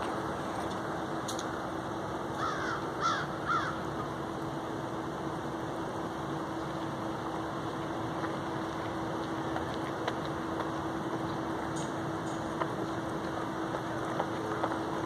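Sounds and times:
background hum and hiss: 0.0s - 15.0s
crows cawing: 2.4s - 3.9s.

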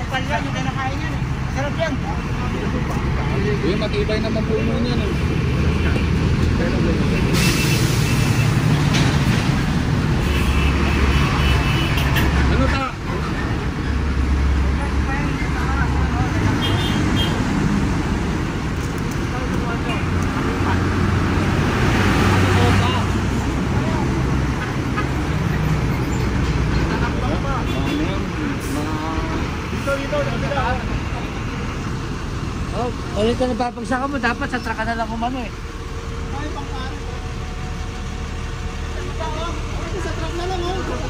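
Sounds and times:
people talking indistinctly: 0.0s - 8.4s, 26.6s - 41.0s
street traffic drone: 0.0s - 41.0s
vehicle engine: 0.0s - 41.0s.

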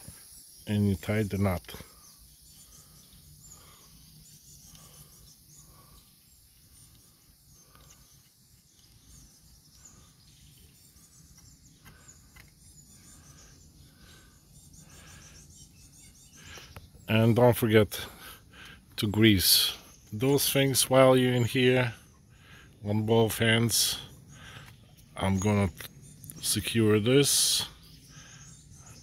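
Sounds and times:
distant birds chirping: 0.0s - 29.0s
steady high hiss: 0.0s - 29.0s.

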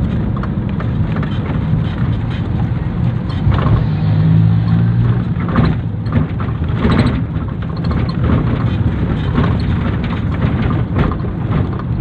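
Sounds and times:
vehicle engine and road noise: 0.0s - 12.0s.

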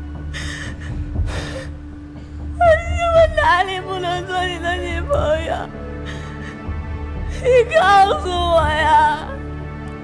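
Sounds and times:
soft background music: 0.0s - 10.0s
woman sobbing: 0.3s - 1.8s, 2.6s - 9.4s.

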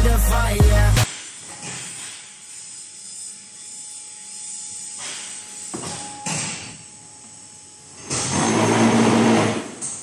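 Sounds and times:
hydraulic machine hum and rush: 8.0s - 10.0s.

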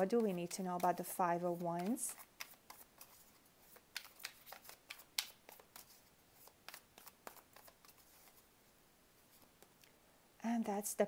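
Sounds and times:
cards being shuffled: 0.0s - 8.5s.

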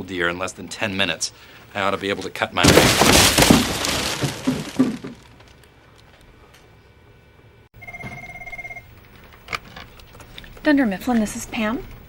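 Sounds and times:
wrapping paper tearing and crumpling: 2.6s - 5.7s
desk phone ringing: 7.8s - 9.3s.

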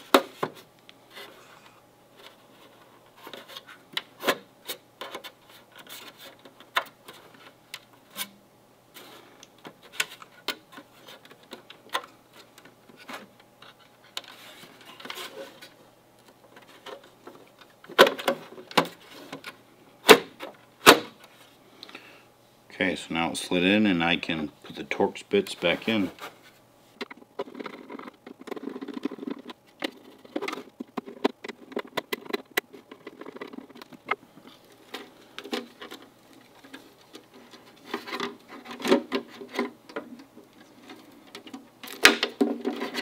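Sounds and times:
plastic scraping and clicking: 27.0s - 43.0s.

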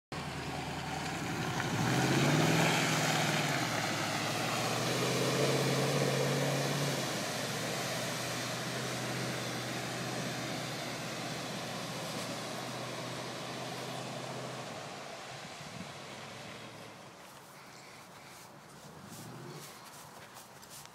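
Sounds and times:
truck engine revving: 0.2s - 17.0s.

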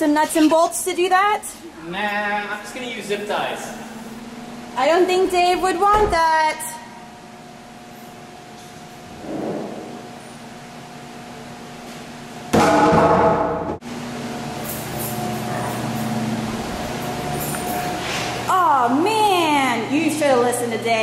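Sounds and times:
mechanical hum with faint tones: 0.0s - 21.0s.

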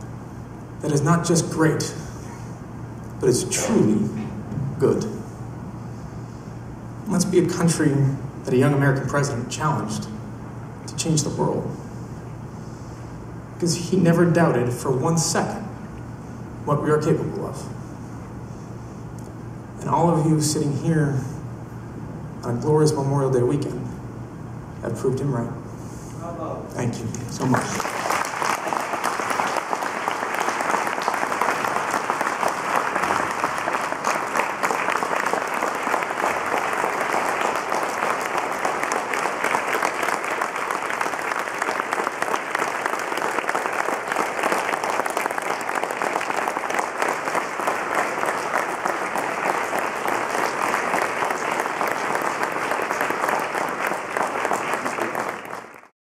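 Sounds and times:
large audience applauding: 27.3s - 55.9s.

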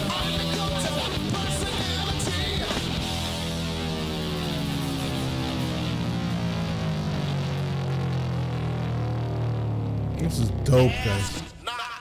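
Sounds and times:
electric guitar pitch sliding down: 0.0s - 11.6s.

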